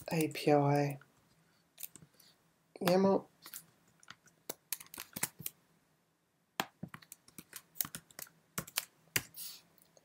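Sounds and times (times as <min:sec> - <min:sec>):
computer keyboard typing: 0:04.0 - 0:05.5, 0:06.9 - 0:09.3.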